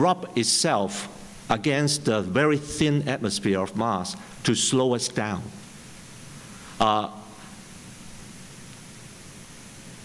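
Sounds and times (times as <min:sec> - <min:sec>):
faint low hum: 0:00.0 - 0:10.0
recording noise hiss: 0:00.0 - 0:10.0.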